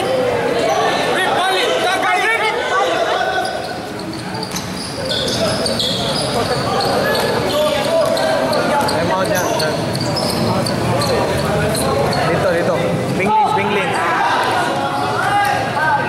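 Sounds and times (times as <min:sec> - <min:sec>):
people calling out and talking: 0:00.0 - 0:16.0.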